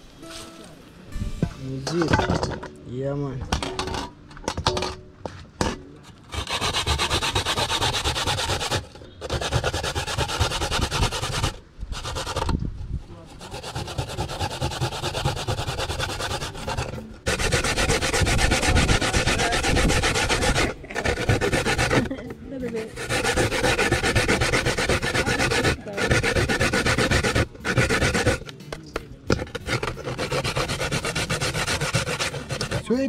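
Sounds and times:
coconut grated on metal grater: 6.1 - 33.0.

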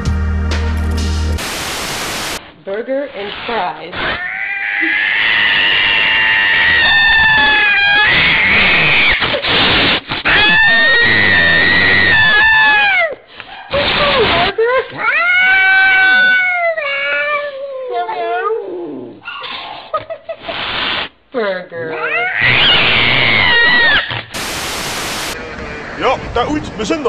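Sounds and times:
cat hissing: 3.2 - 17.4, 18.9 - 21.2, 21.9 - 25.4
cat yowling: 4.0 - 9.3, 10.3 - 13.2, 15.0 - 19.4, 21.9 - 24.3.

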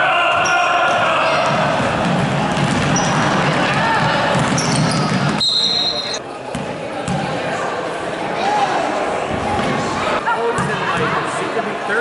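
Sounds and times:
echoing gym chatter: 0.0 - 12.0.

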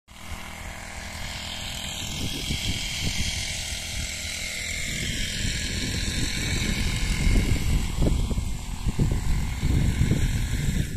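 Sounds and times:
wind buffeting microphone: 0.4 - 10.9.

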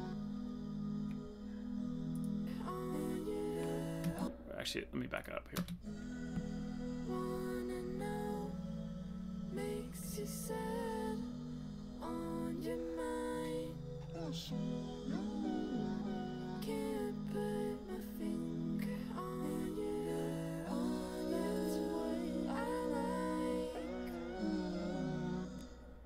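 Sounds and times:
sung backing vocals: 0.0 - 4.9, 5.8 - 26.0.

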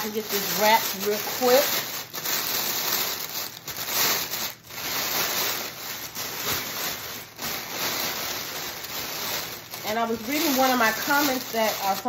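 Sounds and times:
cellophane wrap crinkling: 0.0 - 12.0.

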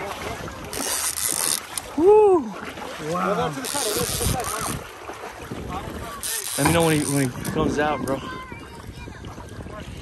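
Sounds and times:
wind buffeting microphone: 0.0 - 2.8, 3.8 - 10.0
faint voices: 0.0 - 10.0.

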